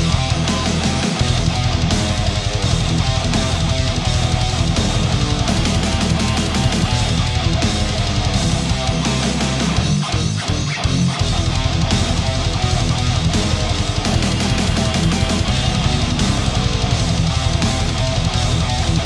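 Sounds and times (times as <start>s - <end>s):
bass guitar: 0.0s - 19.0s
electric guitar riffing: 0.0s - 19.0s.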